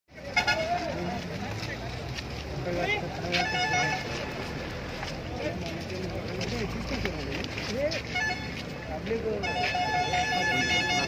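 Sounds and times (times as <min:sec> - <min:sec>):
street traffic noise: 0:00.1 - 0:11.0
voices talking: 0:00.1 - 0:11.0
vehicle horn toots: 0:03.4 - 0:04.2, 0:08.1 - 0:08.5, 0:09.4 - 0:11.0.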